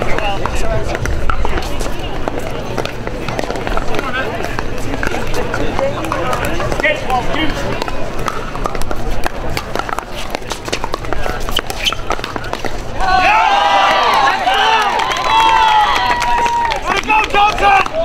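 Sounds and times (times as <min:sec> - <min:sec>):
paddles popping against ball: 0:00.0 - 0:12.9
spectators' voices: 0:00.0 - 0:18.0.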